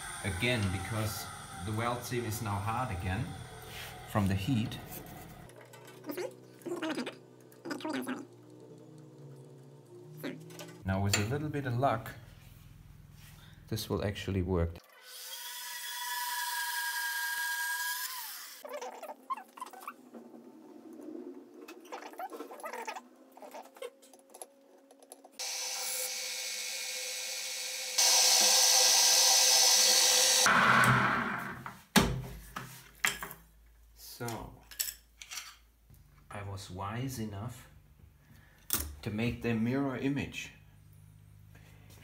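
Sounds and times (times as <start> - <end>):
drill press drilling metal: 0.0 - 4.7, 25.4 - 31.4
band saw whining: 0.0 - 6.6, 8.2 - 11.2, 25.4 - 31.6.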